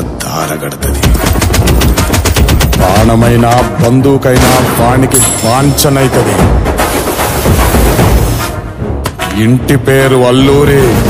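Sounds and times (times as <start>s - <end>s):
trailer music: 0.0s - 11.0s.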